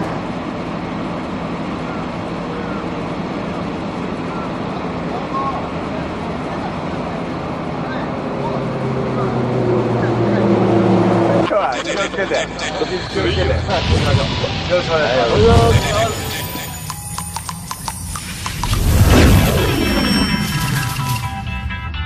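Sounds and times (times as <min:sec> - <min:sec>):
voices chatting: 0:01.8 - 0:20.4.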